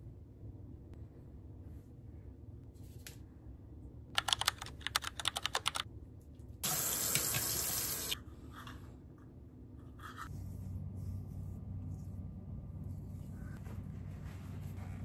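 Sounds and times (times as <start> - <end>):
sink tap running: 6.6 - 8.2.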